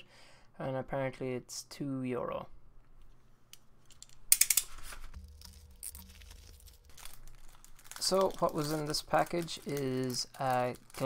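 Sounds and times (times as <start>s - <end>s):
plastic packaging crinkling: 3.8s - 11.0s.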